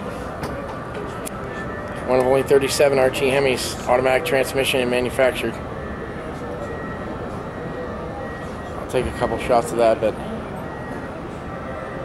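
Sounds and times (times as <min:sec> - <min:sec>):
exhibition hall din: 0:00.0 - 0:12.0.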